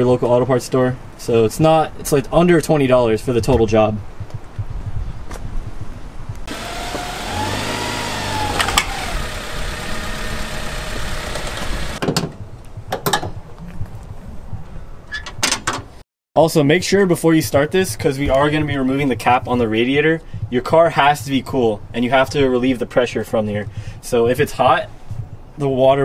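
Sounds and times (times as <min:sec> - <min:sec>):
car engine running: 0:06.5 - 0:12.0.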